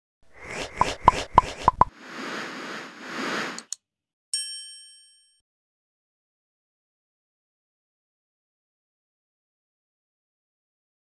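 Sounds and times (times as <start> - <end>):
soft whooshes: 0.4 - 3.7
sharp plops: 0.8 - 1.9
click: 3.6 - 3.8
bright ding: 4.4 - 5.4.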